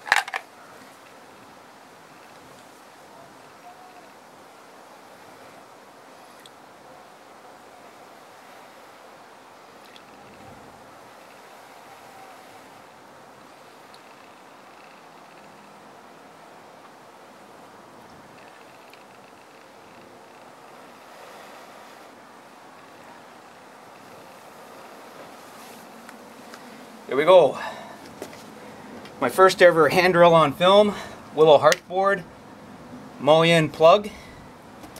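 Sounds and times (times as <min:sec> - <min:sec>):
person blowing softly: 0:21.0 - 0:22.2.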